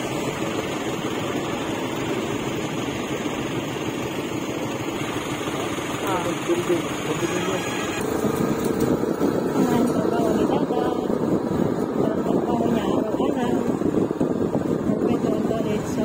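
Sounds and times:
moving vehicle road noise: 0.0 - 16.0.

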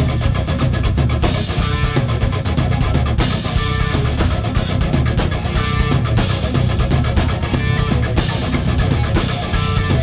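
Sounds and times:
bass guitar: 0.0 - 10.0
drum kit with cymbals: 0.0 - 10.0
electric guitar: 0.0 - 10.0.

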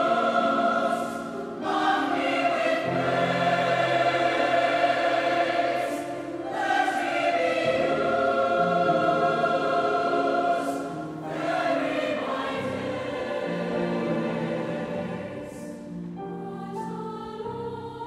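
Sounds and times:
mixed choir singing: 0.0 - 18.0
piano accompaniment: 0.0 - 18.0.

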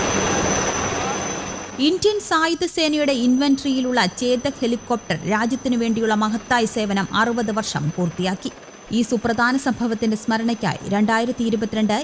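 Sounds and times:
helicopter flying overhead: 0.0 - 12.0
woman's voice: 1.8 - 12.0.

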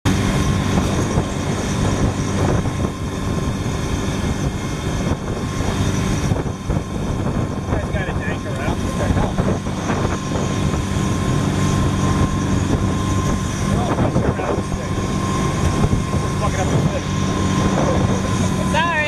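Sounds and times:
motorboat engine droning: 0.0 - 19.0
voices: 7.7 - 9.6, 13.6 - 15.4, 16.2 - 19.0.

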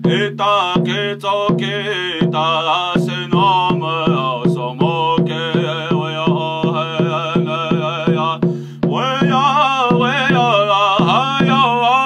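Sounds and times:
drum struck with stick: 0.0 - 12.0
man singing: 0.0 - 12.0.

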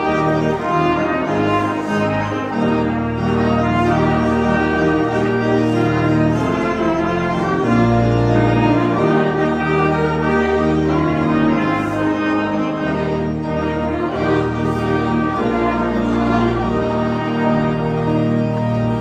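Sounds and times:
low keyboard bass notes: 0.0 - 19.0
trumpets playing a hymn: 0.0 - 19.0.

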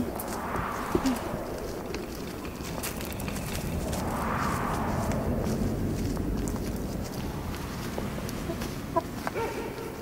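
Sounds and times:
low outdoor rumble: 0.0 - 10.0
chicken-like clucking calls: 8.4 - 10.0.

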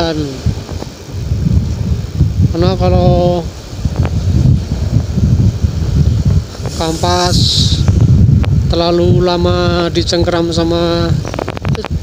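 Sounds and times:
person speaking: 0.0 - 0.6, 2.4 - 3.6, 6.6 - 8.0, 8.6 - 12.0
motorcycle engine running: 0.0 - 12.0
wind rumble on microphone: 0.0 - 12.0.

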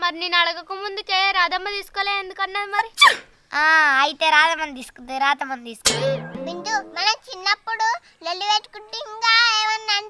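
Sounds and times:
girl speaking in sing-song voice: 0.0 - 10.0.

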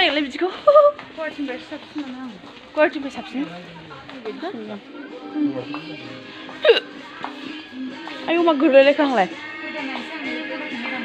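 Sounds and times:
indistinct voices: 0.0 - 11.0
music: 0.2 - 11.0.

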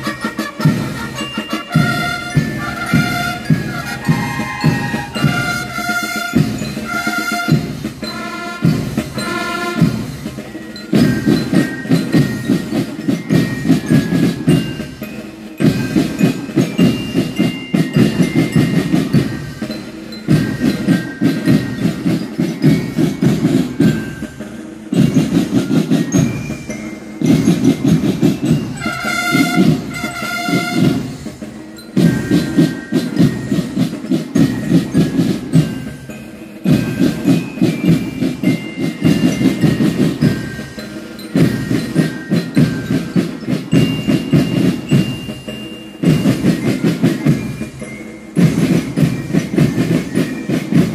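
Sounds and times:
held horn notes: 0.0 - 10.1, 28.8 - 31.2
snare and bass drums: 0.0 - 50.9.

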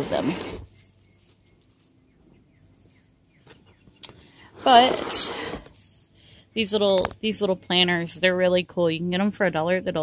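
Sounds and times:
faint bird chirps: 0.7 - 4.4.

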